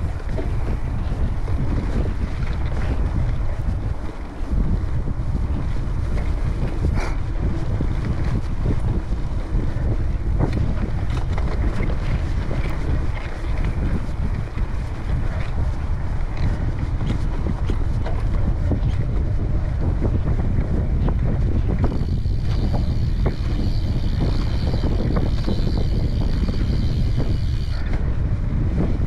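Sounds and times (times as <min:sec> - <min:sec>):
bike clicks and rattles: 0:00.0 - 0:29.0
wind buffeting microphone: 0:00.0 - 0:29.0.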